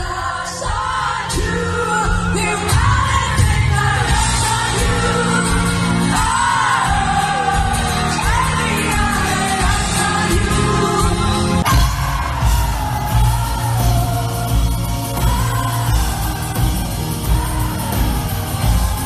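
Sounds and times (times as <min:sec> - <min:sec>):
live pop-rock band: 0:00.0 - 0:19.0
woman singing: 0:00.0 - 0:19.0.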